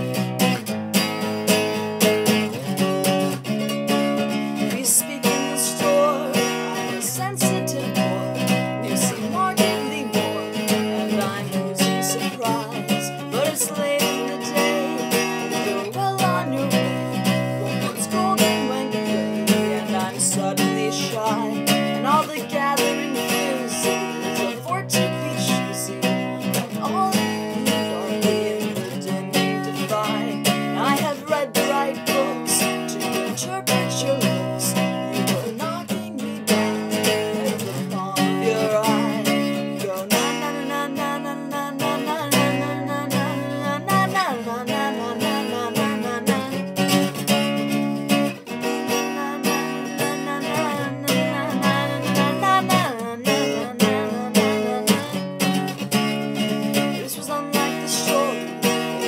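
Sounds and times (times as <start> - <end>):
acoustic guitar strummed: 0.0 - 59.0
person singing: 0.0 - 59.0.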